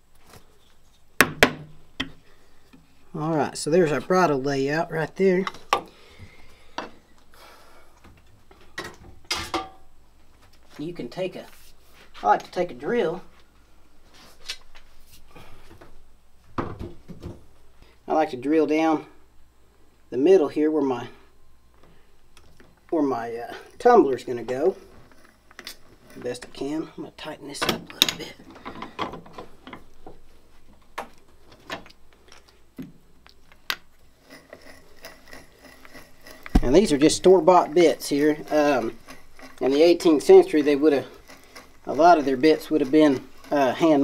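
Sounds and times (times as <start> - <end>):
tools being handled: 33.2 - 44.0.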